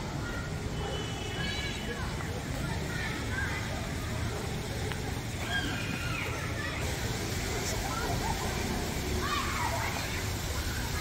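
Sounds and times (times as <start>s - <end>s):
city background noise: 0.0s - 11.0s
faint distant voices: 0.0s - 11.0s.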